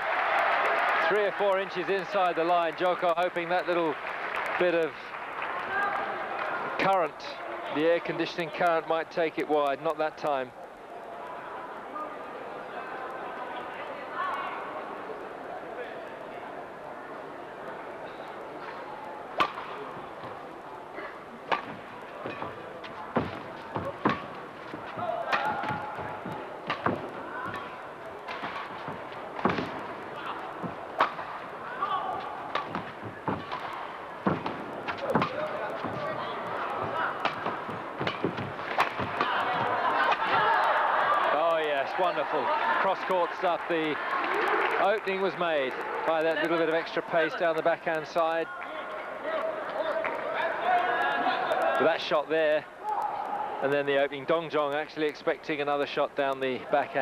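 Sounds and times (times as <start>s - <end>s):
murmur of arena crowd: 0.0s - 57.0s
racquets hitting shuttlecock: 18.6s - 42.2s.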